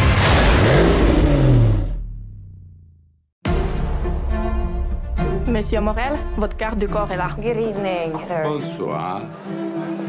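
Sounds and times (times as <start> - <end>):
car engine revving: 0.0 - 2.6
trailer music: 0.0 - 10.0.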